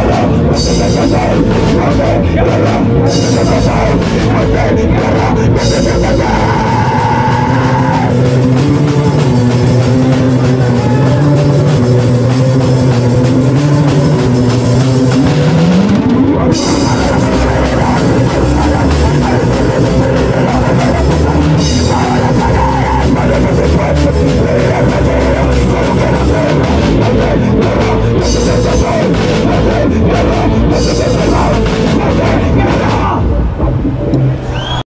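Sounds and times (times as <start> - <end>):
punk band playing loud: 0.0 - 34.8.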